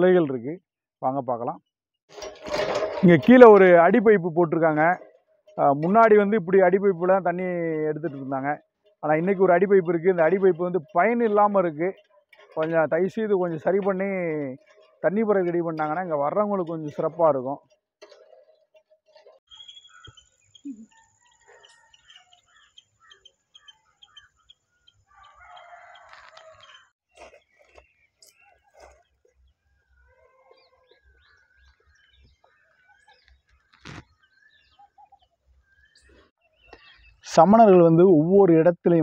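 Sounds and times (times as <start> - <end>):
bird chirps: 19.5 - 37.2
rooster crowing: 25.1 - 26.8.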